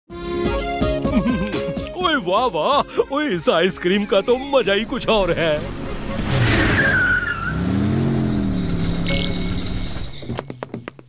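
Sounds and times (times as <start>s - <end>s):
car engine revving: 4.8s - 10.4s
tyre screech: 6.1s - 10.6s.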